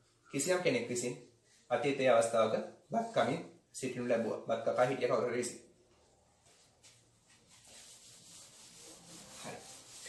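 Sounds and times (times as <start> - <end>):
eraser rubbing on whiteboard: 7.3 - 10.0.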